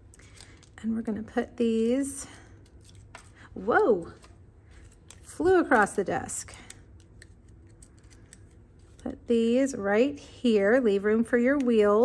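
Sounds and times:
soft paper clicks: 4.2 - 9.0.

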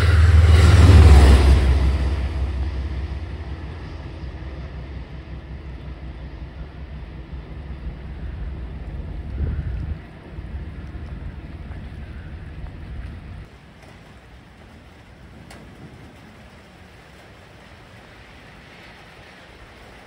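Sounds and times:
quiet background rumble: 0.0 - 20.0
train rumbling along tracks: 0.0 - 20.0.

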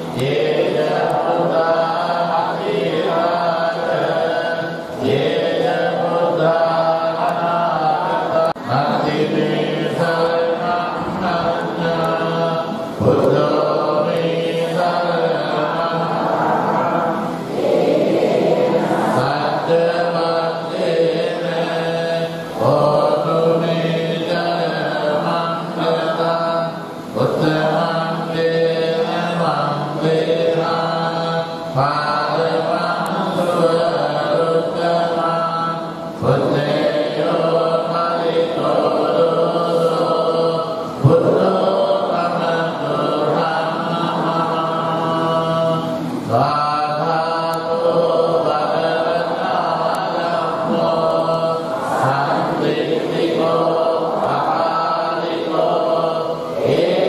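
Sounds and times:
congregation chanting prayers: 0.0 - 57.0.

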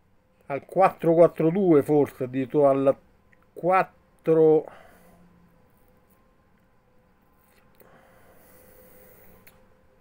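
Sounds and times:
faint steady hum: 0.0 - 10.0
soft breath through nose: 4.7 - 5.4, 7.4 - 9.7.

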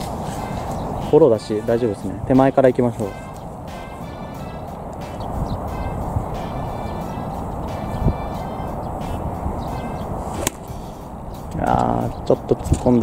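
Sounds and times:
steady background noise: 0.0 - 13.0
golf club striking ball: 10.2 - 11.1.

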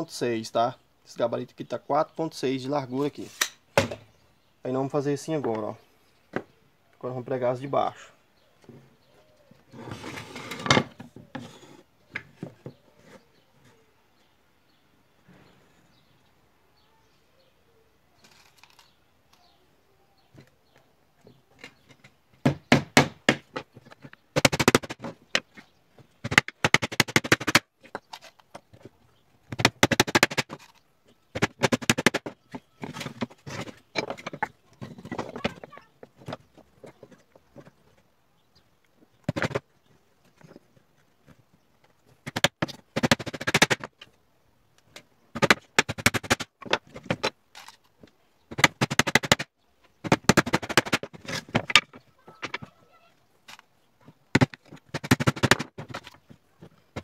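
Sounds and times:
hammer driving nails into wood: 22.4 - 23.6, 24.4 - 25.4, 26.2 - 27.6, 29.5 - 30.7, 31.3 - 32.3, 42.2 - 43.9, 45.4 - 47.3, 48.5 - 51.9, 54.4 - 56.0.

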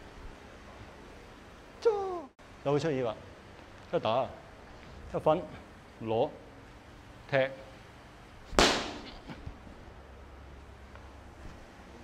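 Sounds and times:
sharp crack of a strike: 8.5 - 9.4.

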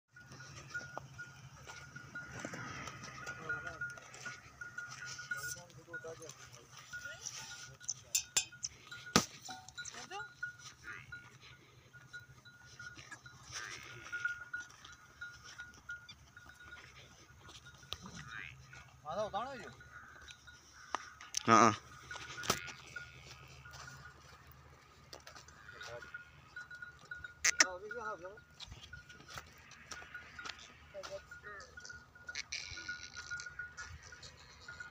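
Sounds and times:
livestock calling: 0.1 - 34.9.

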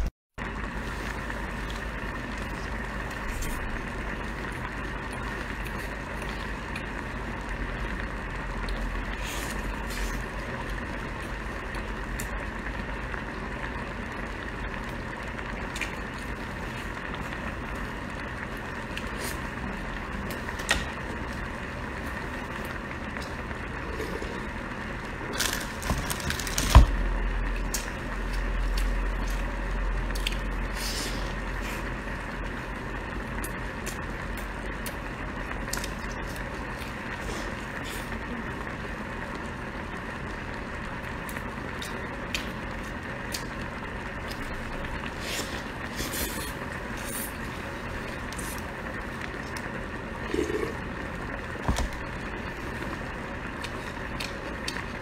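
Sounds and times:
background hiss and hum: 0.0 - 55.0.

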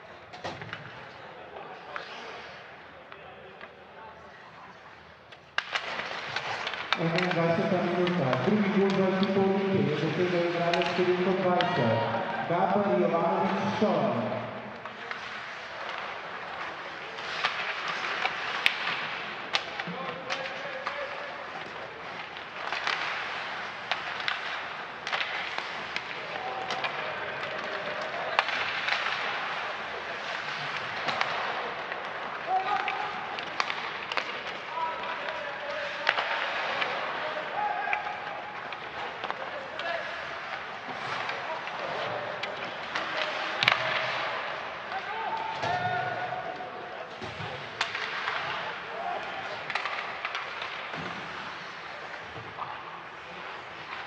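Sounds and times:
hockey sticks and puck clacking: 0.0 - 54.0
skate blades scraping ice: 1.7 - 2.8, 5.4 - 8.8, 14.8 - 19.9, 20.6 - 37.4, 38.5 - 44.8, 47.2 - 54.0
players shouting: 7.0 - 14.8.

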